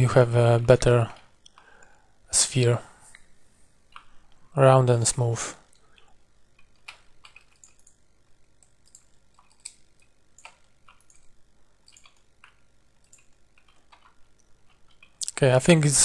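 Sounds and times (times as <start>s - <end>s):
low room hum: 0.0s - 16.0s
computer mouse clicks: 6.0s - 8.0s, 8.6s - 15.2s.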